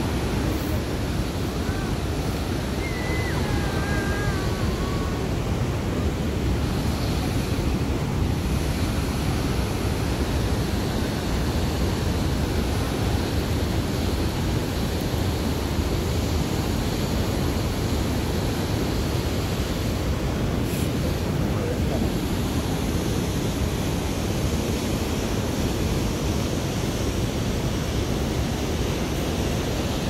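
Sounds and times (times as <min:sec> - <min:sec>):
creek water rushing: 0:00.0 - 0:30.0.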